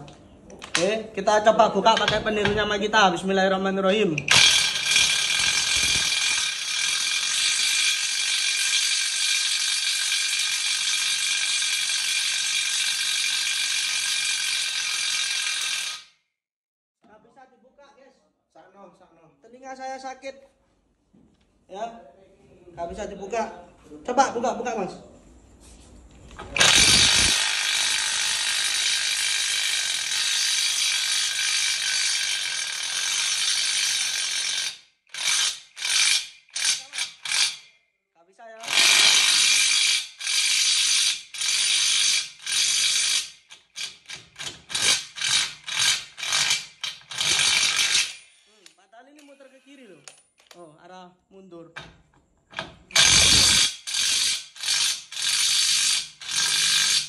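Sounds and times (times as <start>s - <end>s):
impact wrench hammering: 1.9s - 2.8s, 4.2s - 16.1s, 26.5s - 37.7s, 38.6s - 48.5s, 51.8s - 57.0s.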